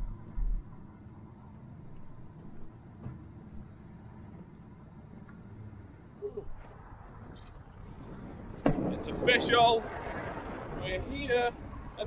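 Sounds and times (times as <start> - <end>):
vehicle engine rumble from inside cab: 0.0 - 8.6.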